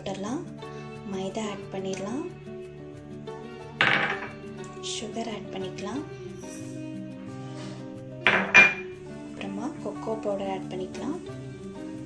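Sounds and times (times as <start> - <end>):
background music with held notes: 0.0 - 12.0
glass bowl clinking on ceramic bowl: 3.8 - 4.4, 8.3 - 9.0.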